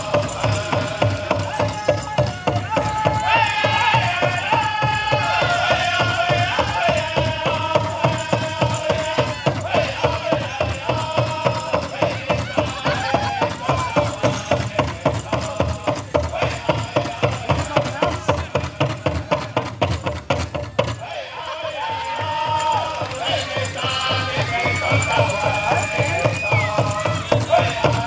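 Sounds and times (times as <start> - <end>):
group singing wavering vocals: 0.0 - 19.4, 20.8 - 28.0
large drum beaten fast: 0.0 - 21.0, 22.1 - 28.0.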